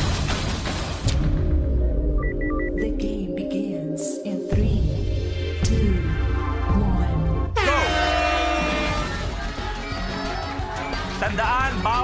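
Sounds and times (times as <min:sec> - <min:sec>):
game show background music: 0:04.5 - 0:12.0.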